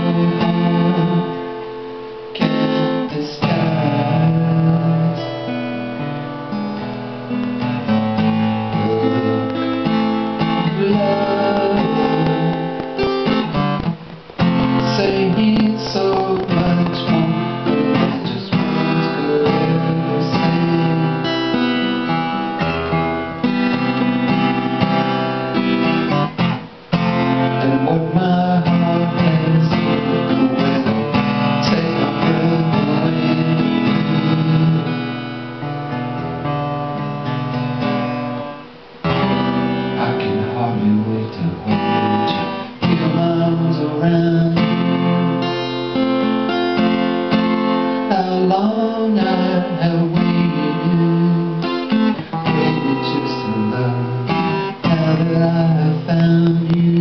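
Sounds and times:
acoustic guitar playing: 0.0s - 57.0s.

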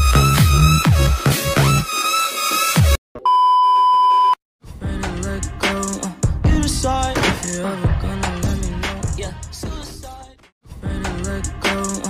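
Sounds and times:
music: 0.0s - 3.0s, 4.6s - 12.0s
electronic beep: 3.2s - 4.4s.

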